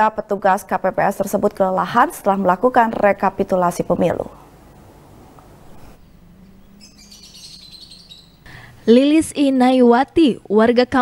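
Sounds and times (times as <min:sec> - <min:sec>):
faint low hum: 0:00.0 - 0:11.0
small birds chirping: 0:05.7 - 0:08.7.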